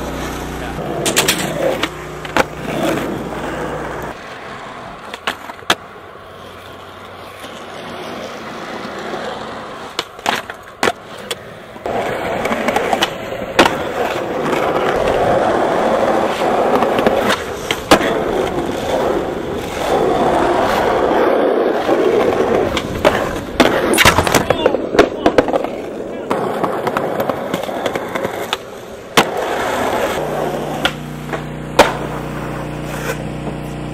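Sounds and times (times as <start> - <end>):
skateboard grinding a ledge: 0.0 - 33.9
skateboard wheels rolling on concrete: 0.0 - 33.9
skateboard pops and clacks: 1.0 - 3.1, 5.0 - 5.9, 9.8 - 15.3, 15.9 - 20.1, 21.8 - 33.9.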